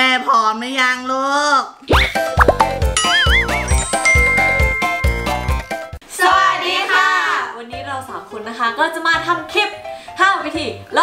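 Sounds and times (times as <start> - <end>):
children's intro jingle: 2.1 - 6.0.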